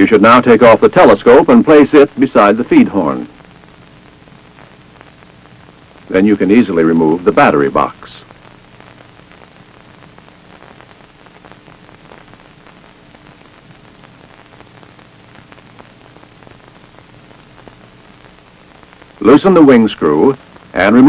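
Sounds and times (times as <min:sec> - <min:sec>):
faint crackle: 0:00.0 - 0:21.0
faint low hum: 0:00.0 - 0:21.0
steady film hiss: 0:00.0 - 0:21.0.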